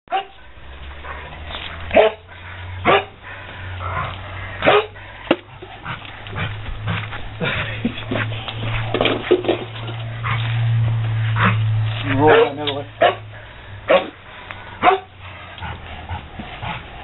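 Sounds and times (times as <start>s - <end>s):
dog barking: 0.1s - 0.4s, 1.9s - 3.2s, 4.6s - 5.0s, 12.2s - 13.3s, 13.9s - 14.2s, 14.8s - 15.1s.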